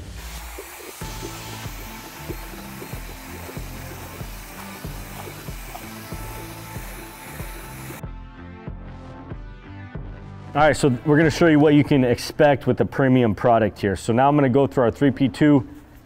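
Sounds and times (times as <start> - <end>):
drill mixing resin in bucket: 0.0 - 8.0
background music with steady beat: 0.0 - 12.1.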